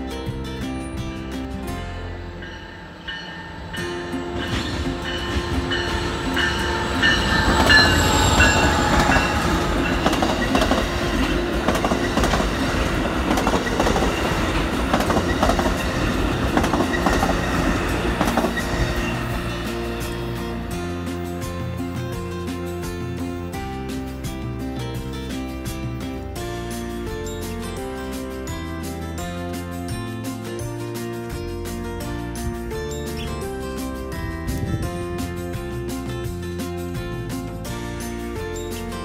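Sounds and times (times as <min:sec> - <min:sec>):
diesel locomotive passing: 0:00.1 - 0:39.0
train wheels clattering on rails: 0:02.4 - 0:28.3.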